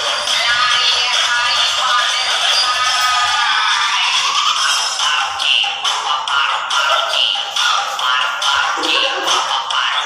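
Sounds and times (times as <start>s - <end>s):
dance music with singing: 0.0s - 10.0s.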